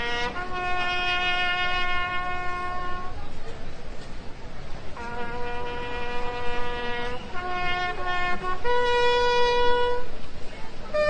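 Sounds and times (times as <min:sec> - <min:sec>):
brass instrument long note: 0:00.0 - 0:03.2, 0:05.0 - 0:10.1.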